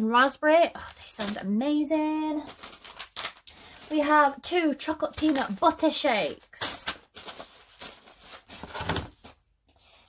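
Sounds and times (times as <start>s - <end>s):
packaging rustling and knocking: 7.1s - 10.0s.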